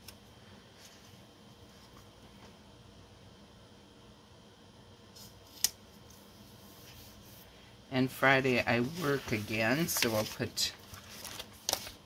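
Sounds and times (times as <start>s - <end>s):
paper sticker rustling: 8.6s - 12.0s.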